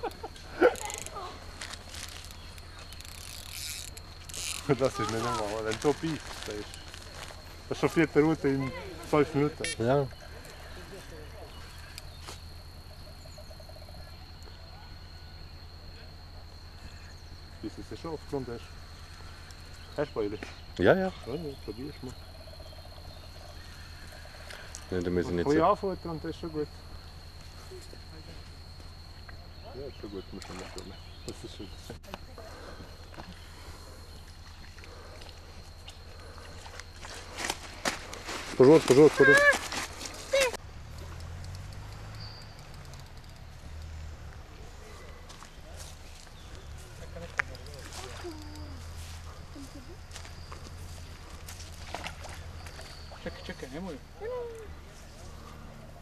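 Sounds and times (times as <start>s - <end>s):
footsteps on grass: 36.6s - 40.5s.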